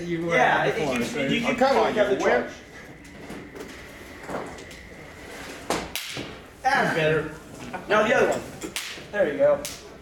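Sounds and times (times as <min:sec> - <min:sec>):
capacitor spark discharge snaps: 0:05.8 - 0:06.4, 0:08.7 - 0:09.0, 0:09.6 - 0:09.9.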